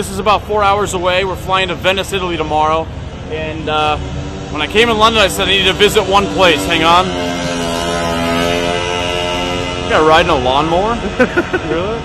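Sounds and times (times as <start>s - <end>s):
motor scooter engine buzzing: 4.1s - 12.0s.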